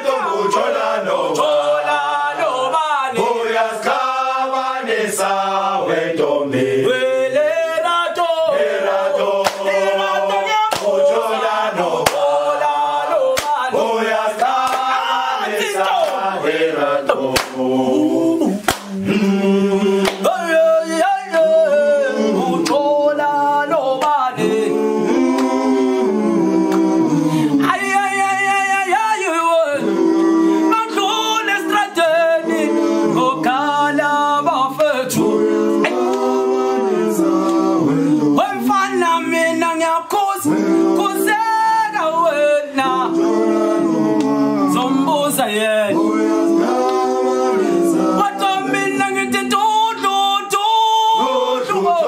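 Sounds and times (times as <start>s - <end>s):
choir chanting a cappella: 0.0s - 52.0s.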